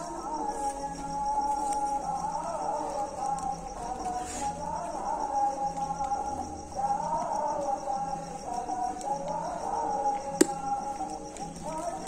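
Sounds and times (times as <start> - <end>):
background music: 0.0 - 12.0
crickets chirping: 0.0 - 12.0.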